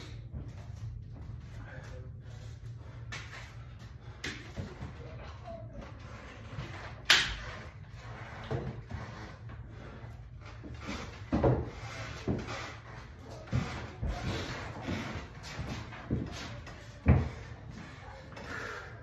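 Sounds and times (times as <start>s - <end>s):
footsteps on concrete floor: 0.0s - 18.8s.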